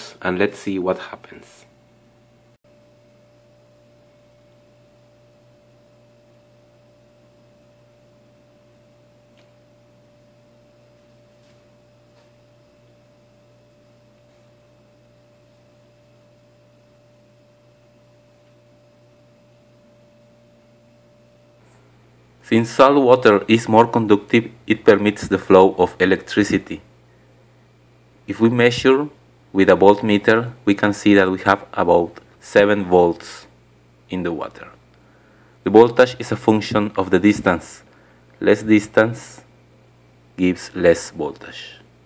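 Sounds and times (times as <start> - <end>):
faint steady tone: 2.1 - 24.5.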